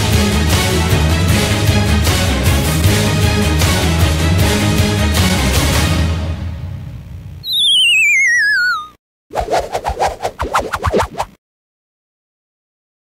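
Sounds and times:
falling whistle: 7.4s - 9.0s.

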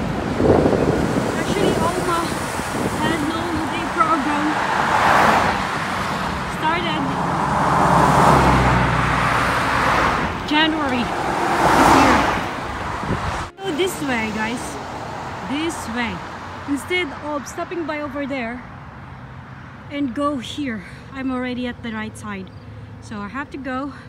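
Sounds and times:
cars passing by: 0.0s - 24.0s.

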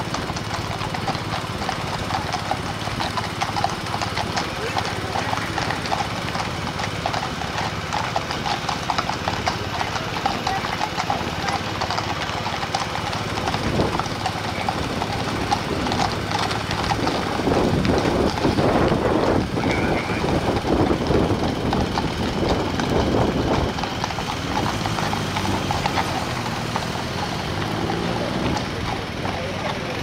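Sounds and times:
car driving by: 0.0s - 30.0s
horse hooves clip-clopping on road: 0.0s - 30.0s.

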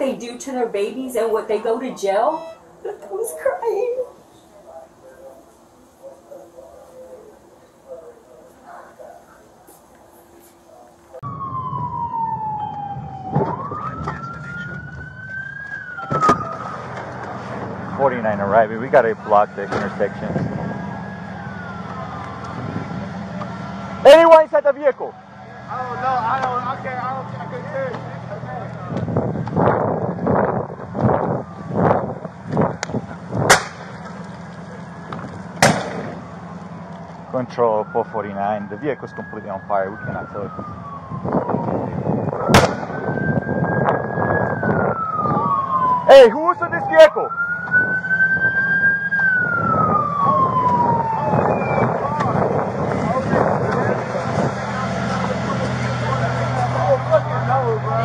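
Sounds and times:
distant voices: 0.0s - 58.0s
emergency vehicle siren: 0.0s - 58.0s
loud sharp cracks: 33.5s - 34.1s, 35.6s - 36.2s, 42.5s - 43.0s
low engine hum: 47.3s - 58.0s.

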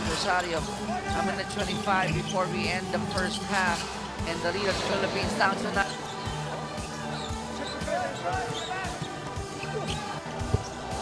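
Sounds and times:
shoe squeaks: 0.0s - 3.8s, 4.6s - 11.0s
arena music: 0.0s - 11.0s.

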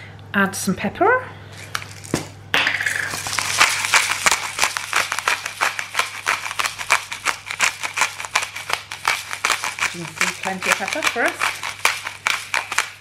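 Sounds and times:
pepper mill grinding: 1.5s - 13.0s.

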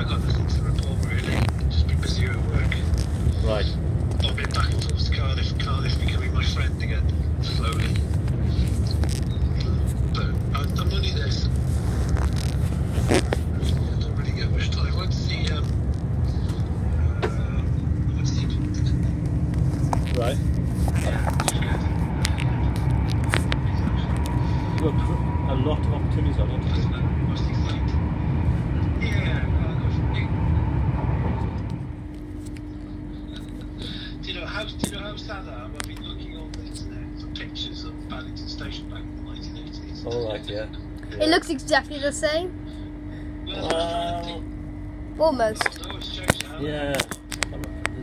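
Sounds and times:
voices talking: 0.0s - 11.6s, 13.1s - 31.4s, 32.5s - 44.6s, 45.2s - 48.0s
train carriage rumble: 0.0s - 48.0s.

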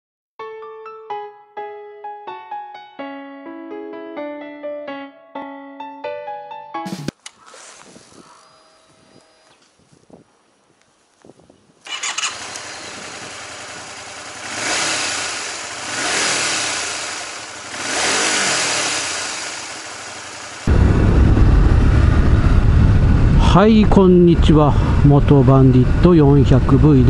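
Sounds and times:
wind rumble on microphone: 7.8s - 11.9s, 20.7s - 27.0s
motorcycle engine accelerating: 11.9s - 27.0s.

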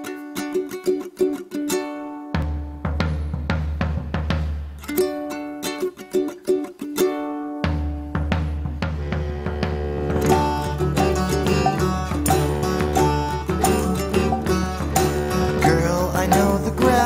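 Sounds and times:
ukulele strumming: 0.0s - 17.0s
deep drum struck with mallets: 2.4s - 4.8s, 7.7s - 17.0s.

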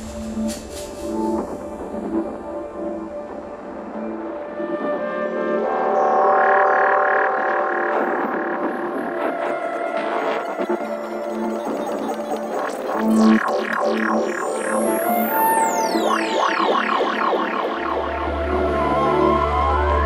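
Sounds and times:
electronic drones and pads: 0.0s - 20.0s.

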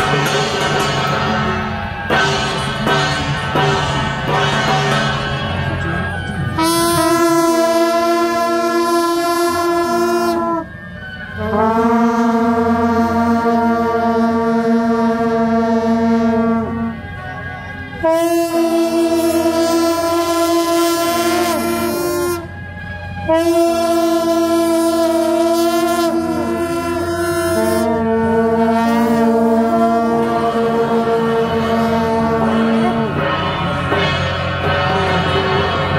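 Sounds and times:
brass horns playing held chords: 6.6s - 10.8s, 11.4s - 17.1s, 18.0s - 22.6s, 23.3s - 35.9s.

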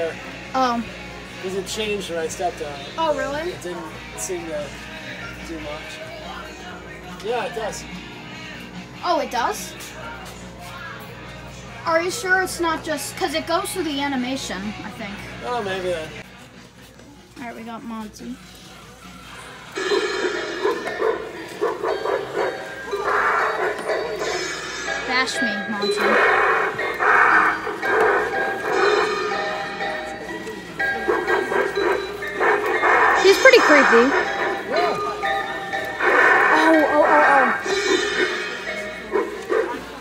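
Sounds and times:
screeching monkey-like cries: 19.8s - 25.2s, 25.8s - 29.4s, 31.0s - 34.9s, 35.9s - 40.0s
cymbal clashes: 24.2s - 25.3s, 37.6s - 39.1s.

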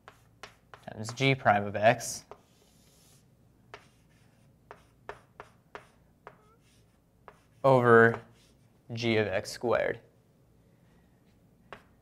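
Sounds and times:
pen writing strokes: 0.0s - 1.3s, 2.3s - 8.7s.

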